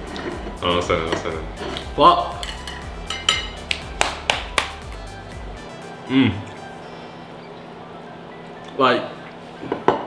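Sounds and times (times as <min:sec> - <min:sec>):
background music with bass: 0:00.0 - 0:10.0
utensils clinking against dishes: 0:01.0 - 0:03.6.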